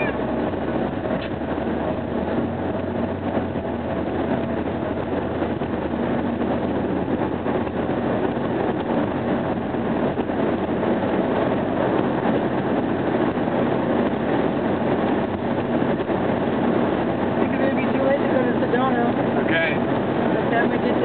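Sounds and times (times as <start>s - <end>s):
car engine hum: 0.0s - 21.0s
tyre and wind noise: 0.0s - 21.0s.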